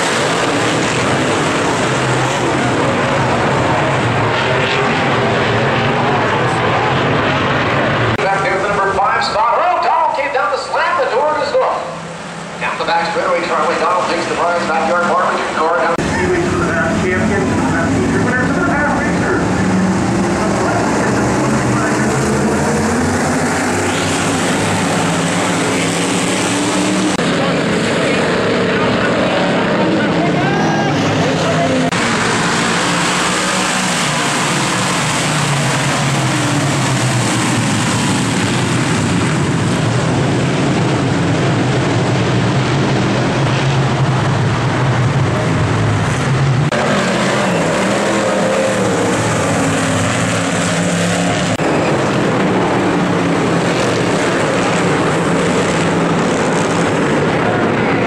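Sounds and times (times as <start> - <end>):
race car engines: 0.0 - 58.0.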